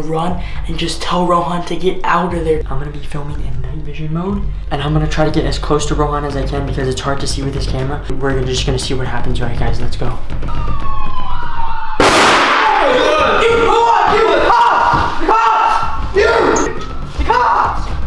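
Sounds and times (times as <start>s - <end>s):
siren from a phone: 10.5s - 12.0s
loud explosive bang: 12.0s - 12.9s.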